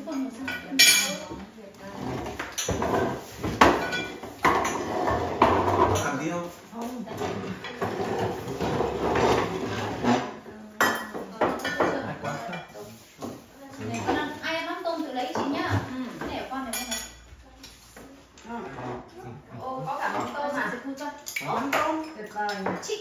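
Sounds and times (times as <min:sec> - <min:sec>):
tableware clinking: 0:00.0 - 0:01.4, 0:02.0 - 0:06.2, 0:07.2 - 0:12.9, 0:16.2 - 0:17.3.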